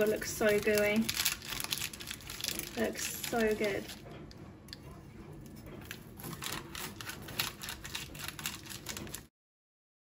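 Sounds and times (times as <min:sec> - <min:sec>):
knife cutting crisp cookie bar: 0:05.8 - 0:09.3.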